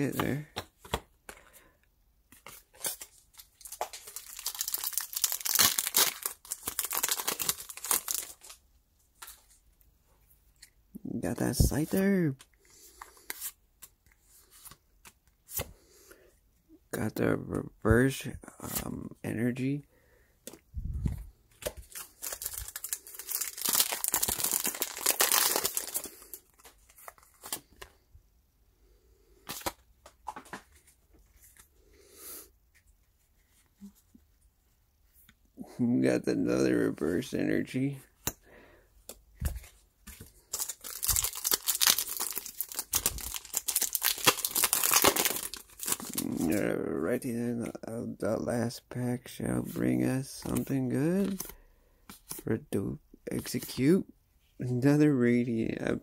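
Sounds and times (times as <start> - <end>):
foil wrapper tearing and crinkling: 2.8 - 8.6, 21.9 - 27.7, 40.5 - 46.5.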